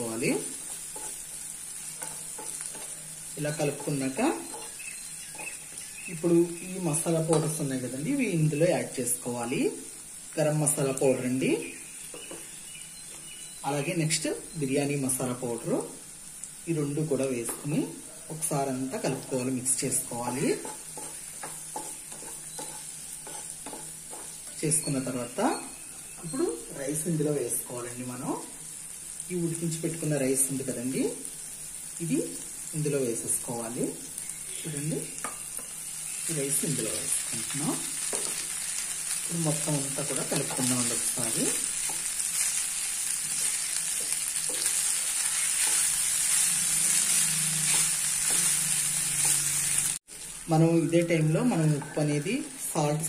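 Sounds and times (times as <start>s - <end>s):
vegetables sizzling in oil: 0.0s - 53.0s
spatula scraping frying pan: 0.6s - 5.7s, 20.4s - 24.6s, 40.4s - 50.0s.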